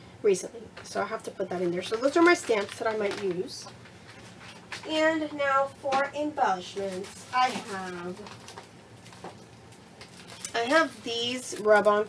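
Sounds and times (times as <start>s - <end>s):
packaging rustling: 1.8s - 5.1s, 6.4s - 12.0s.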